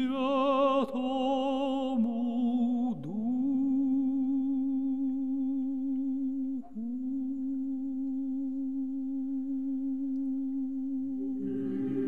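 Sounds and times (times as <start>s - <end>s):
long hummed vocal note: 2.2s - 12.0s
choir singing a cappella: 11.2s - 12.0s.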